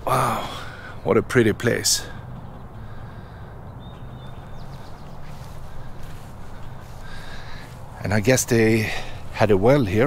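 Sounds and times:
steady low rumble: 0.0 - 9.9.

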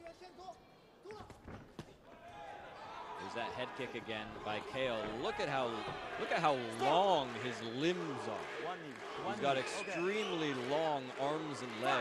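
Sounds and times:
crowd noise: 1.9 - 12.0.

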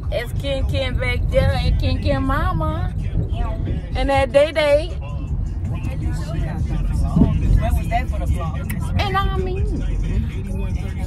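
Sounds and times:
car rumbling inside cabin: 0.0 - 11.0
quiet voices talking: 0.0 - 11.0.

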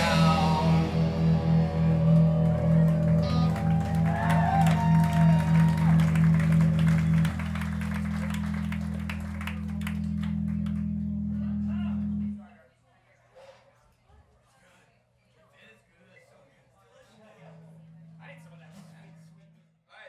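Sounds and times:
electric guitar and bass droning: 0.0 - 12.4
audience clapping and cheering: 1.4 - 11.4.

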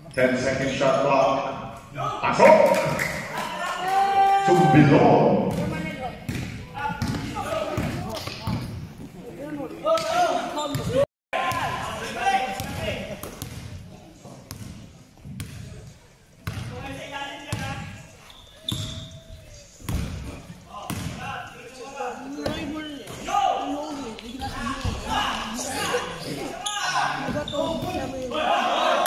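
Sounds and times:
voices of players and spectators: 0.0 - 29.0
basketball bouncing on court: 5.5 - 8.8, 12.6 - 13.8, 14.5 - 15.8, 16.4 - 16.7, 19.8 - 21.2.

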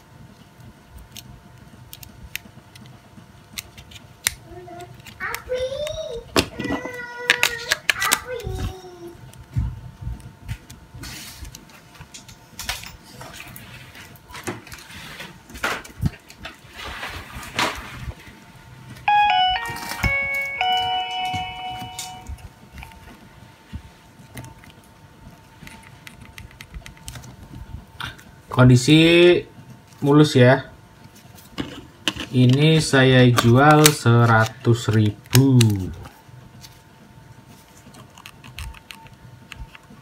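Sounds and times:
phone startup melody: 19.1 - 22.5.

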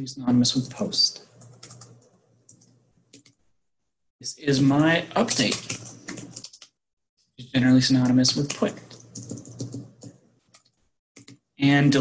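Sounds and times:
keyboard typing clicks: 1.4 - 3.4.

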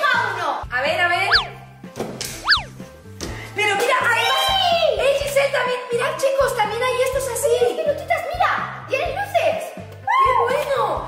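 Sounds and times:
light background music: 0.0 - 11.0
cartoon boing effect: 2.4 - 2.7.

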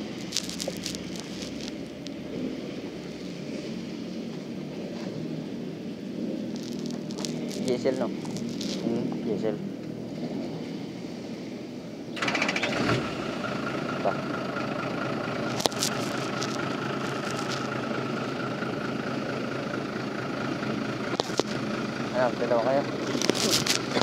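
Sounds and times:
diesel engine cranking and idling: 0.0 - 24.0.

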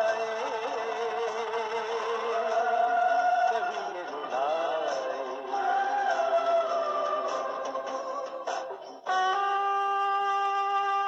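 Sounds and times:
man singing: 0.0 - 8.5
backing music: 0.0 - 11.0.

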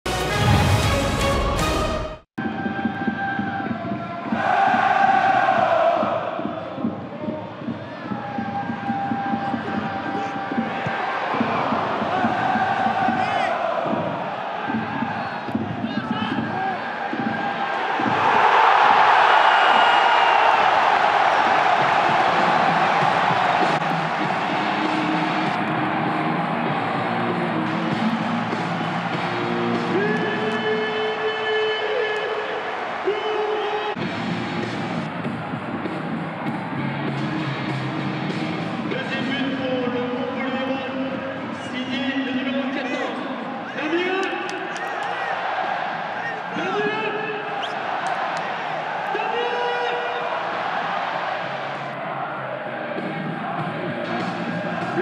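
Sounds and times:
crowd chanting and singing: 2.4 - 55.0
crowd roaring: 2.9 - 39.9, 42.1 - 55.0.

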